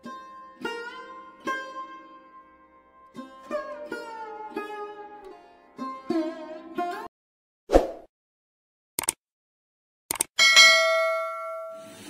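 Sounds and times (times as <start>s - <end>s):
mouse clicks: 9.0s - 9.2s, 10.1s - 10.3s
notification bell ding: 10.4s - 11.9s.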